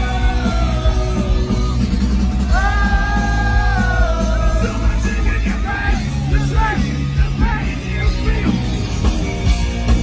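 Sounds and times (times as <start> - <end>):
live rock band playing: 0.0 - 10.0.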